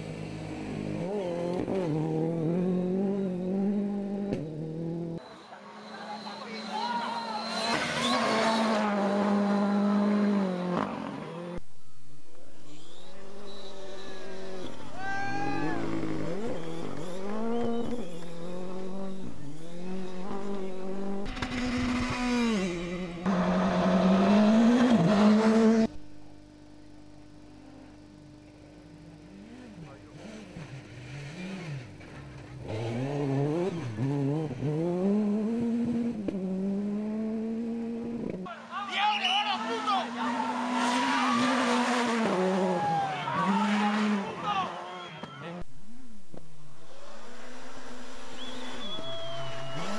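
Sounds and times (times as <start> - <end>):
rally car engines revving: 0.0 - 5.3, 6.2 - 11.7, 12.3 - 38.5, 40.0 - 49.9.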